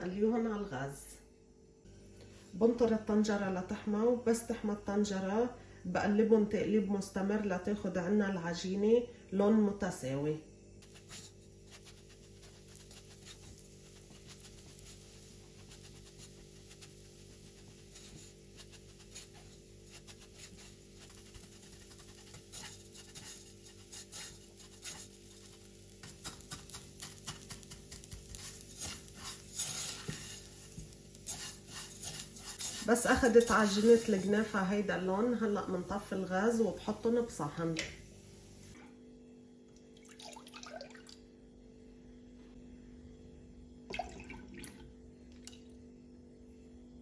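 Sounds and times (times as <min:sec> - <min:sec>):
spatula scraping dough in pot: 0:10.8 - 0:37.9.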